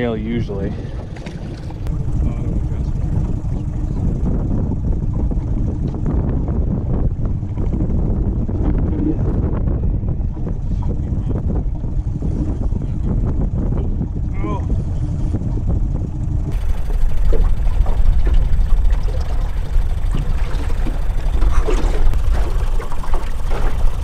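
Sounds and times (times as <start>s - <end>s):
outboard motor rumble: 0.0s - 24.0s
wind buffeting microphone: 0.0s - 24.0s.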